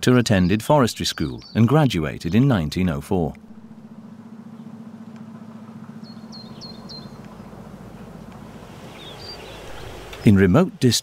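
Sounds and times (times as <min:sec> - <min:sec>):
bird chirping: 0:00.0 - 0:10.6
steady low hum: 0:00.0 - 0:11.0.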